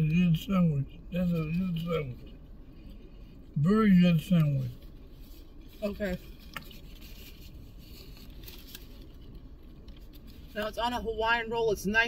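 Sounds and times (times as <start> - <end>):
low steady rumble: 0.0 - 12.0
paper napkin rustling: 4.3 - 10.8.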